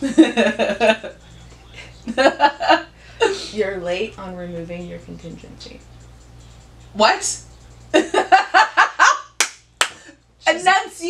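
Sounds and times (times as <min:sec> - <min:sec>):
woman laughing: 0:00.0 - 0:01.2, 0:02.1 - 0:03.6, 0:08.0 - 0:09.3
hand claps: 0:09.4 - 0:10.1.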